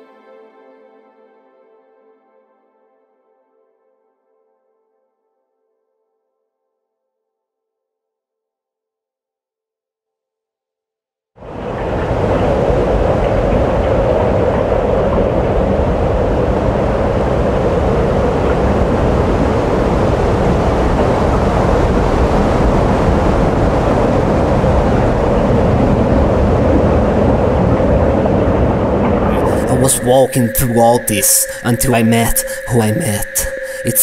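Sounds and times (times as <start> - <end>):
low rumble: 11.4 - 33.9
hum-like noise band: 11.4 - 34.0.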